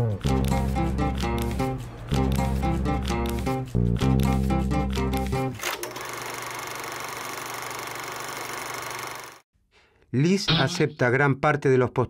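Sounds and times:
background music: 0.0s - 5.6s
fast mechanical rattle: 5.6s - 9.4s.

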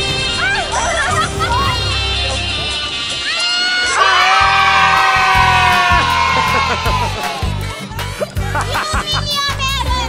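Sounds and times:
children shouting a cheer: 3.2s - 7.7s
background music with steady beat: 4.1s - 10.0s.

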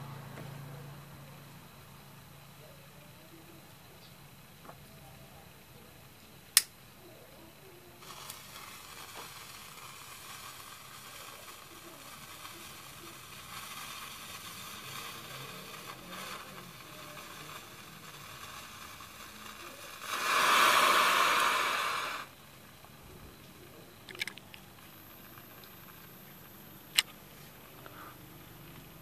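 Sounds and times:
faint steady hiss: 0.0s - 29.0s
powder mixture flaring with hiss: 0.0s - 29.0s.

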